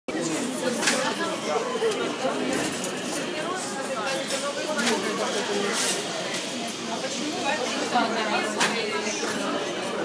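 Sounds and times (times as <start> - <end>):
overlapping voices chattering: 0.1 - 10.0.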